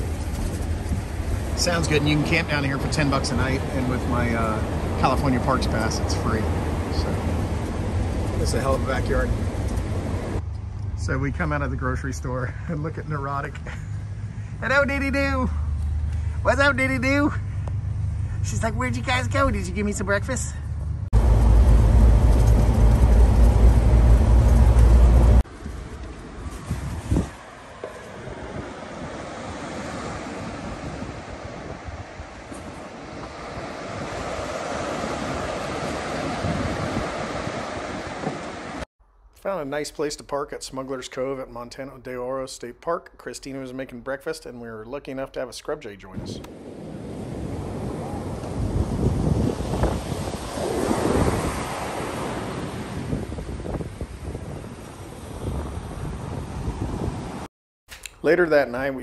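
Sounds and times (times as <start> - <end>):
surf washing into rocky cove: 0.0 - 10.4, 26.6 - 38.9, 46.4 - 57.5
wind buffeting microphone: 0.0 - 11.5, 21.1 - 38.8, 46.1 - 57.5.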